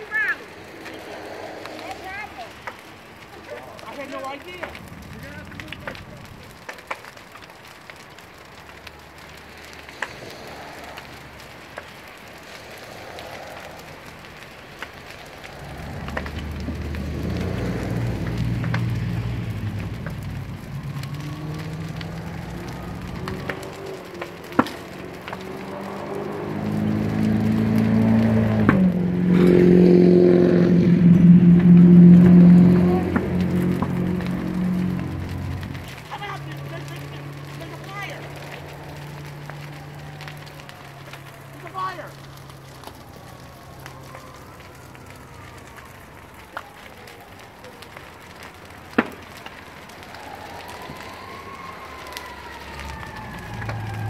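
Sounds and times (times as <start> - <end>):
sharp pops from fire: 0.0 - 54.0.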